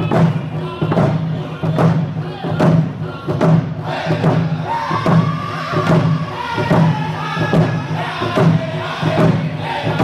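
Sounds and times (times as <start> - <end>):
frame drums beating: 0.0 - 10.0
group of men singing: 0.0 - 10.0.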